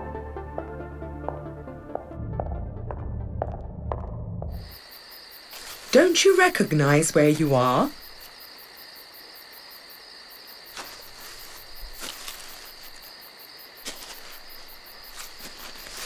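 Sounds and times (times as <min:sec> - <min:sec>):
crickets chirping: 0:04.4 - 0:16.0
footsteps in dry leaves: 0:05.4 - 0:08.3, 0:10.7 - 0:13.2, 0:13.8 - 0:16.0.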